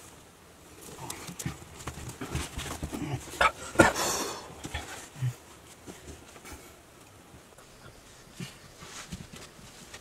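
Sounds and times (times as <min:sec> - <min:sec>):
irregular knocks and scuffs: 0:08.8 - 0:10.0.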